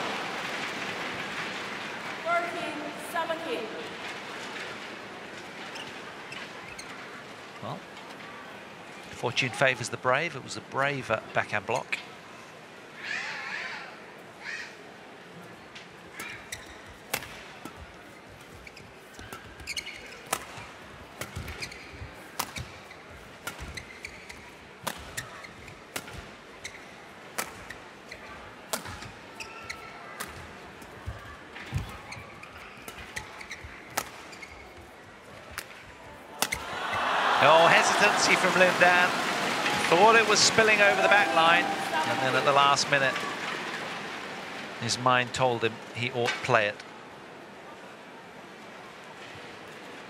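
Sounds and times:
racket hitting shuttlecock: 16.2s - 17.8s, 18.4s - 26.3s, 27.3s - 31.0s, 32.8s - 34.5s, 36.4s - 36.8s
crowd voices: 28.0s - 50.0s.

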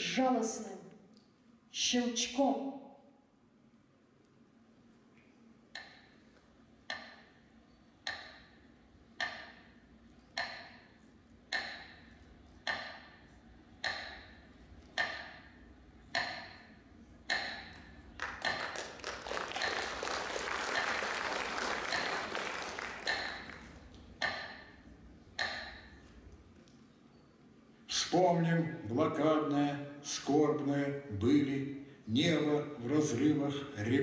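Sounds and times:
metronome clicking: 6.9s - 7.3s, 8.0s - 8.6s, 9.2s - 10.9s, 11.5s - 18.6s, 23.1s - 26.8s
audience applause: 18.2s - 23.8s.

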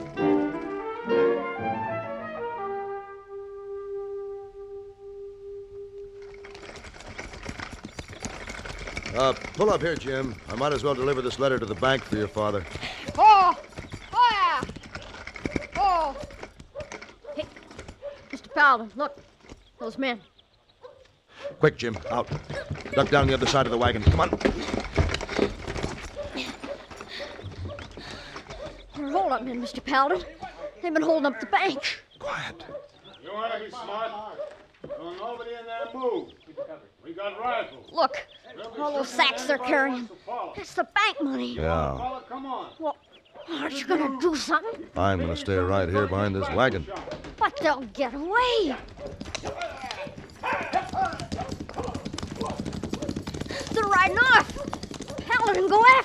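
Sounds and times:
horse hooves clip-clopping: 0.0s - 0.9s, 6.0s - 31.2s, 34.0s - 36.3s, 43.4s - 56.0s.

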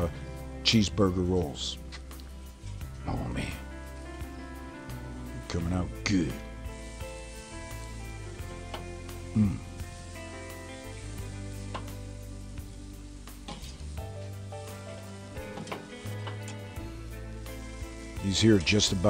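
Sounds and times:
background music: 0.0s - 19.0s
burger patties sizzling on grill: 0.0s - 19.0s.

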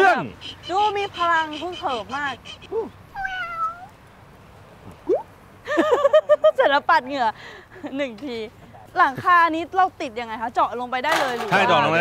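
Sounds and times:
short pitched animal calls: 2.5s - 3.9s.

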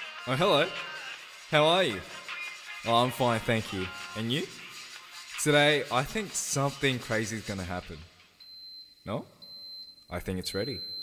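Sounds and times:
person speaking: 1.5s - 2.2s, 2.8s - 8.1s
high-pitched electronic beep: 8.4s - 11.0s.

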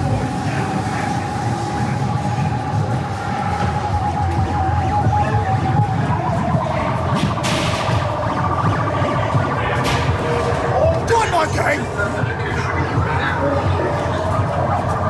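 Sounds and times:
low rumbling drone: 0.0s - 15.0s
wavering electronic siren tone: 0.0s - 15.0s.

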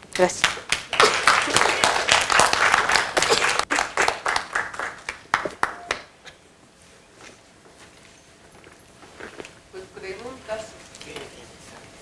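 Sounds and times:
audience applauding: 0.4s - 6.1s.

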